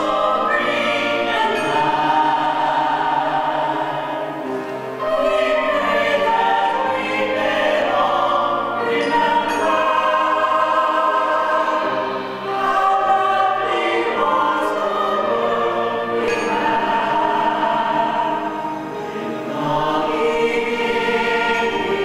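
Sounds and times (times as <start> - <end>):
mixed choir singing: 0.0 - 22.0.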